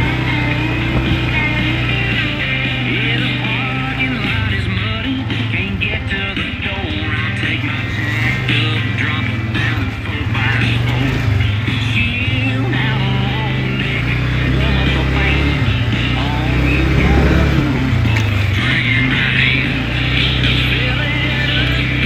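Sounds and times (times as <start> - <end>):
atv engine running: 0.0 - 22.0
song with singing: 0.0 - 22.0.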